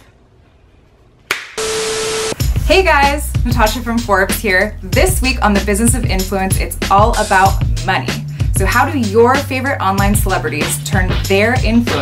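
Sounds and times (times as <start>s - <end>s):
tv static hiss: 1.6s - 2.4s.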